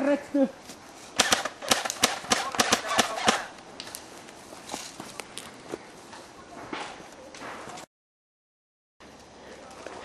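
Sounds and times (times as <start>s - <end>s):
airsoft gun shots: 1.2s - 3.5s.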